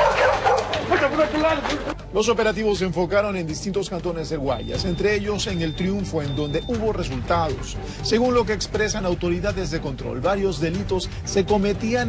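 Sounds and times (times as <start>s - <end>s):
dog barking: 0.0s - 1.1s
noisy background: 0.0s - 12.0s.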